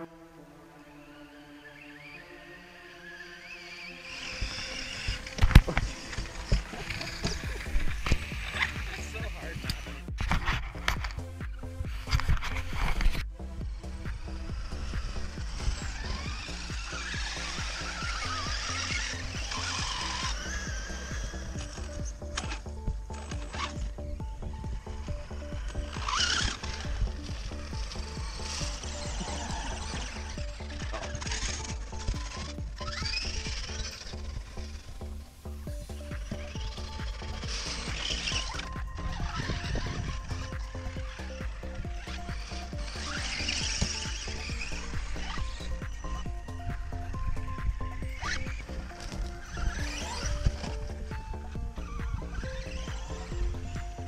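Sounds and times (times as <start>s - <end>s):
electric motor whining: 0.0s - 54.0s
background music with steady beat: 3.8s - 54.0s.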